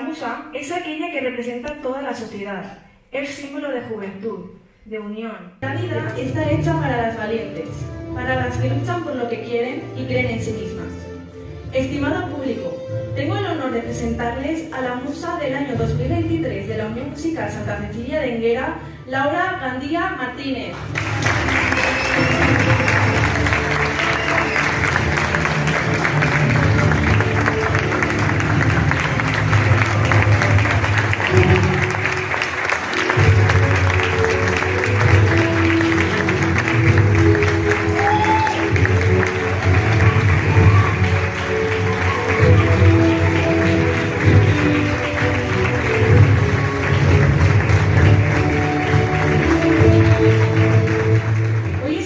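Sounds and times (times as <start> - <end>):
audience applauding: 20.8 - 51.9.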